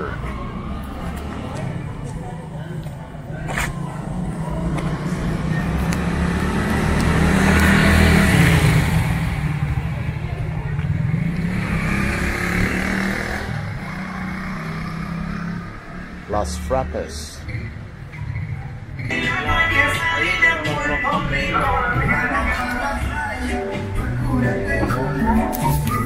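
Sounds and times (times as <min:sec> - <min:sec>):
vehicle engine passing by: 0:03.6 - 0:17.2.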